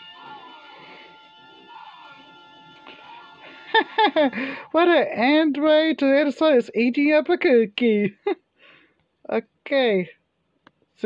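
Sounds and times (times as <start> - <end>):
music from vinyl record: 0.0 - 4.5.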